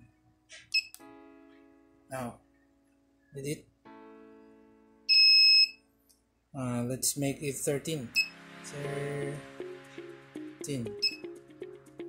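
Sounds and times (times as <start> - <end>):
high buzzer beep: 5.1 - 5.8, 8.2 - 8.4, 11.0 - 11.2.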